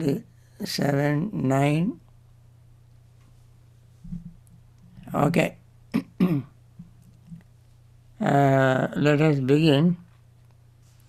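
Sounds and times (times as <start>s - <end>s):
low steady hum: 0.0s - 11.0s
man clearing his throat: 5.9s - 6.6s.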